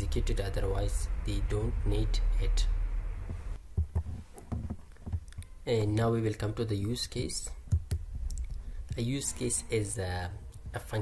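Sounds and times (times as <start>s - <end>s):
soft low thumps: 0.0s - 5.4s
faint hum: 0.0s - 11.0s.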